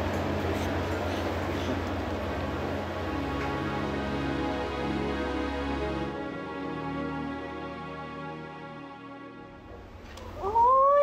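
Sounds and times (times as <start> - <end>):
soft background music: 0.0 - 10.3
woman crying loudly: 10.4 - 11.0.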